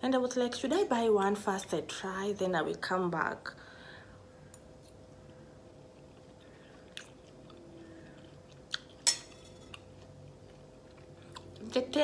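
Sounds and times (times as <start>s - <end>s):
faint steady hum: 0.0s - 12.0s
chewing dried fish: 5.2s - 12.0s
fork clinking on ceramic plate: 9.0s - 9.8s.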